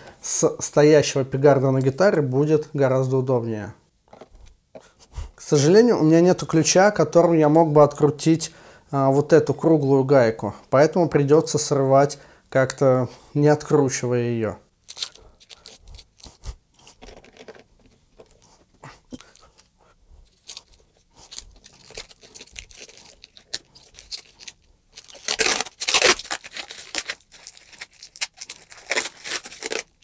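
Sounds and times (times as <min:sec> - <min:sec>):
plastic film peeling and crinkling: 0:14.8 - 0:17.3, 0:20.3 - 0:30.0.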